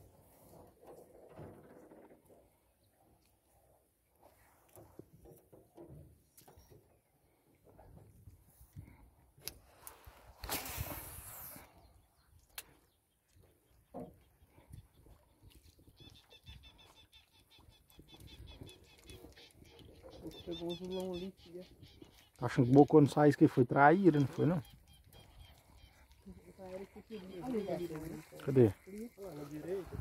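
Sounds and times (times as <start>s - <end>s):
birds chirping: 11.7s - 30.0s.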